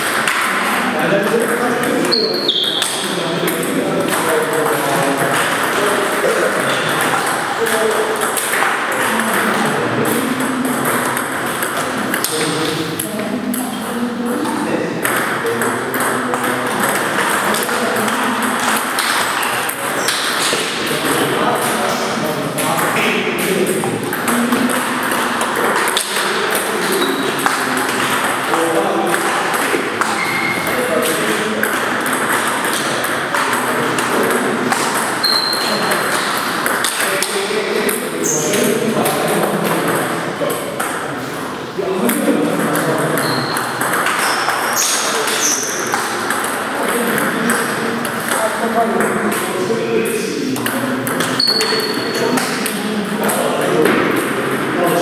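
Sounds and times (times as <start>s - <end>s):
murmur of voices in hall: 0.0s - 55.0s
table tennis balls clicking: 0.0s - 55.0s.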